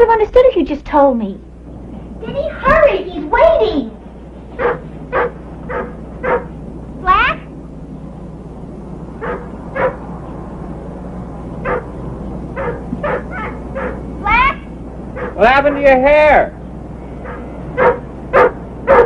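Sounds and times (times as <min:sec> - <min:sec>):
steady low hum: 0:00.0 - 0:19.0
dog barking: 0:04.6 - 0:06.5, 0:09.2 - 0:10.0, 0:11.6 - 0:11.9, 0:12.6 - 0:14.6, 0:15.2 - 0:15.5, 0:17.2 - 0:19.0
dog yelping: 0:04.6 - 0:06.5, 0:09.2 - 0:10.0, 0:11.6 - 0:16.0, 0:17.2 - 0:19.0.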